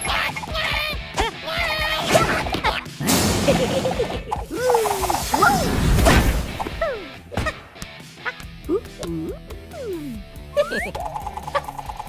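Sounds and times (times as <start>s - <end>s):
squeaky cartoon vocal noises: 8.2s - 12.0s.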